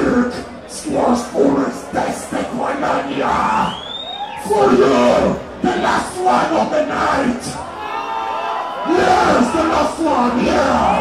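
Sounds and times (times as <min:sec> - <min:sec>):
crowd noise: 0:00.0 - 0:11.0
long whistle: 0:03.7 - 0:04.4.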